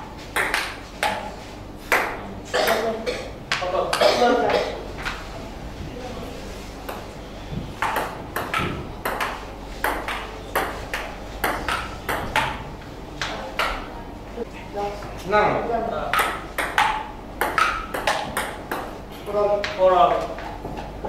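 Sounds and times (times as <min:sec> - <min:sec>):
table tennis ball tapping: 0:00.3 - 0:01.3, 0:07.8 - 0:12.6, 0:16.1 - 0:19.0.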